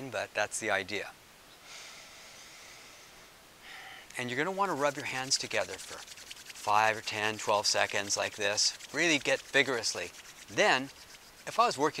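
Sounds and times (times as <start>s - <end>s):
man breathing: 1.6s - 4.2s.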